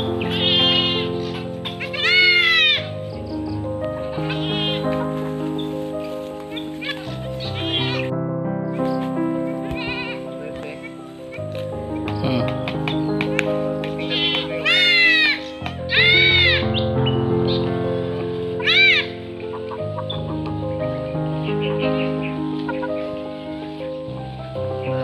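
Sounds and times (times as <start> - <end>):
background music with held notes: 0.0 - 25.0.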